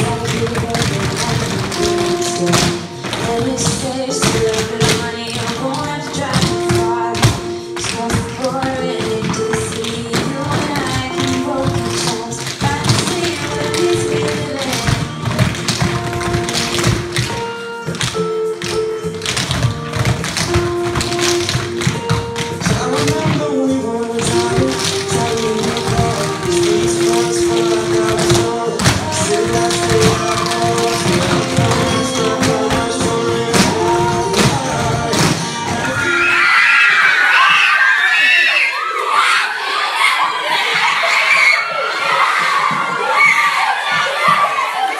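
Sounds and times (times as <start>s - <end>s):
tap shoes on wooden floor: 0.0s - 23.5s, 24.2s - 35.9s
recorded music: 0.0s - 37.7s.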